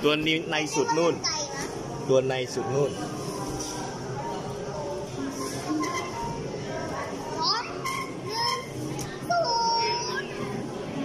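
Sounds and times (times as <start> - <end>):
children's voices: 7.3 - 10.8.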